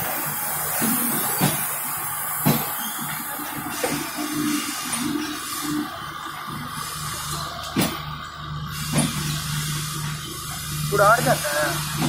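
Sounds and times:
train coaches rumbling past: 0.0s - 12.0s.

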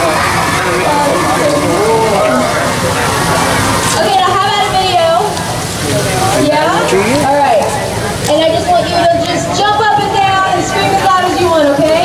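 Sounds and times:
batter sizzling in hot oil: 0.0s - 12.0s
voices: 0.0s - 12.0s.

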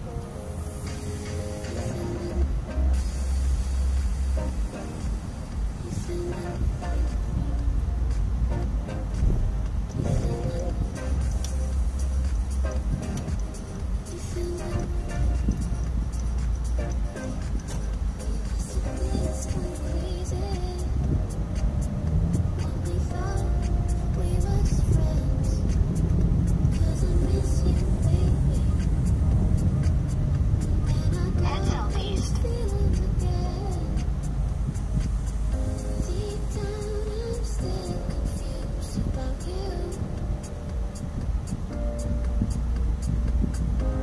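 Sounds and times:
car radio playing a song: 0.0s - 44.0s
car cabin rumble: 1.3s - 44.0s.

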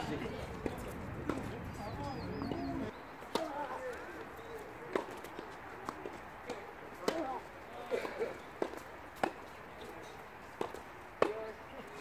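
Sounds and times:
tennis ball bouncing on court: 8.1s - 9.9s, 10.6s - 11.4s.

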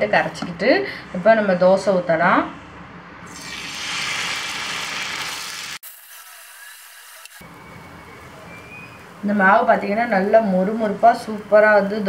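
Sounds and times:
batter sizzling on hot pan: 3.3s - 7.5s.

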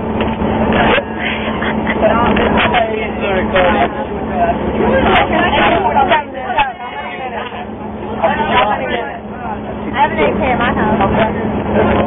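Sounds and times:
bus engine hum: 0.0s - 12.0s
boys talking and shouting: 0.6s - 12.0s.

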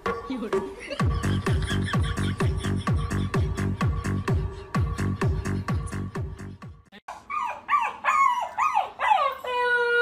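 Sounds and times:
electronic music with bass sweeps: 0.0s - 6.9s
puppy yelping and howling: 7.2s - 10.0s.

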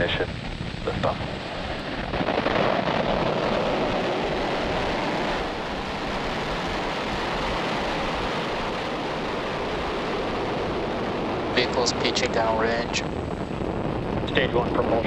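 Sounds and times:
loud rocket exhaust roar: 0.0s - 15.0s.

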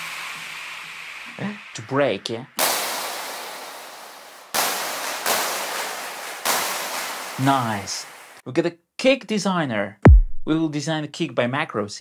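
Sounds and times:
hiss: 0.0s - 8.4s
white noise hits: 2.6s - 8.4s.

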